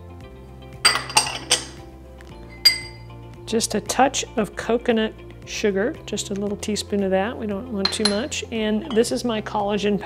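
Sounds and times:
background music: 0.0s - 10.0s
spatula clinking on glass dish: 2.5s - 3.0s, 7.8s - 9.1s.

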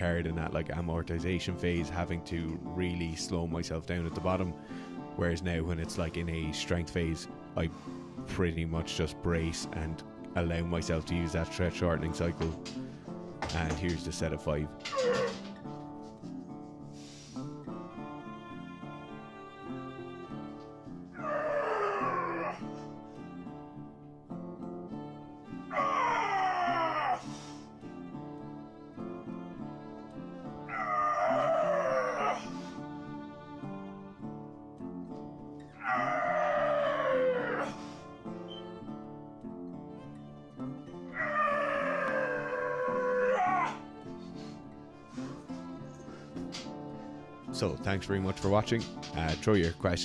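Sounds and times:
background music: 0.0s - 50.0s
voice-like cry: 14.8s - 15.5s, 21.2s - 22.7s, 25.7s - 27.4s, 30.7s - 32.7s, 35.8s - 37.9s, 41.1s - 43.8s.

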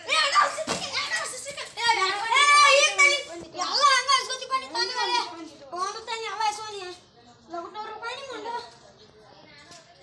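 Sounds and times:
children talking excitedly: 0.0s - 10.0s.

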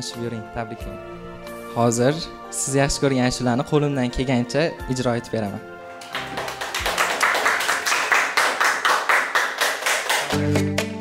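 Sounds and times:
people clapping: 6.0s - 11.0s.

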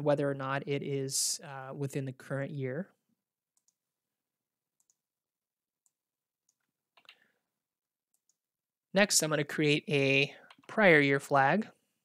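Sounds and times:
faint computer mouse clicks: 6.5s - 7.2s.

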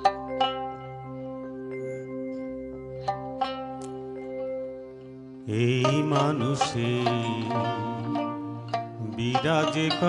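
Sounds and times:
keyboard: 0.0s - 10.0s
plucked lute: 0.0s - 10.0s
wavering melody line: 0.0s - 10.0s.

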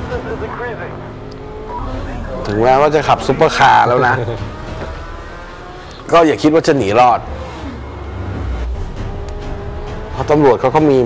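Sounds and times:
car engines running: 0.0s - 11.0s.

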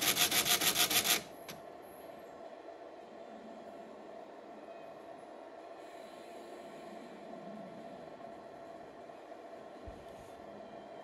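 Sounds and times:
pachinko machine rapid rattle: 0.0s - 1.3s.

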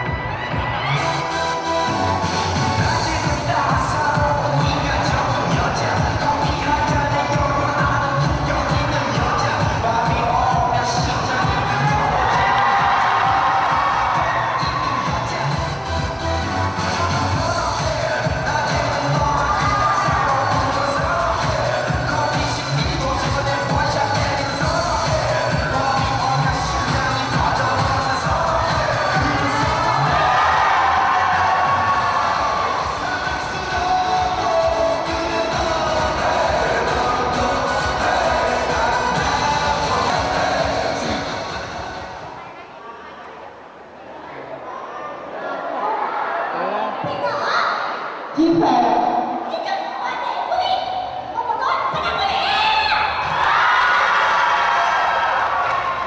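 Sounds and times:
music with a steady beat: 0.0s - 42.3s
crowd cheering and shouting: 0.0s - 42.4s, 44.5s - 56.0s.

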